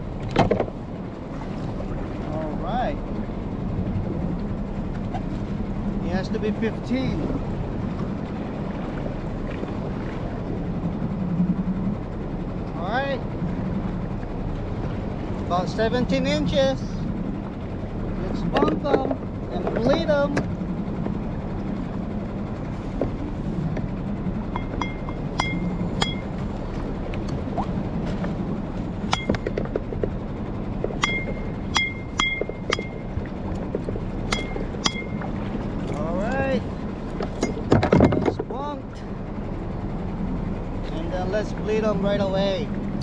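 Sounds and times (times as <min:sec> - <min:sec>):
boat motor humming: 0:00.0 - 0:43.0
ringing clinks and knocks: 0:24.6 - 0:26.3, 0:31.0 - 0:33.0.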